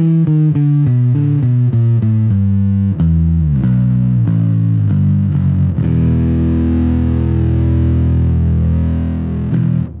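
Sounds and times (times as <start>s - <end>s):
fuzzed electric bass notes: 0.0s - 10.0s.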